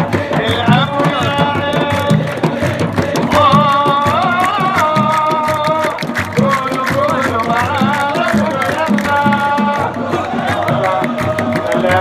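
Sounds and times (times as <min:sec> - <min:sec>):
frame drums beating: 0:00.0 - 0:12.0
supporters singing a chant: 0:00.0 - 0:12.0.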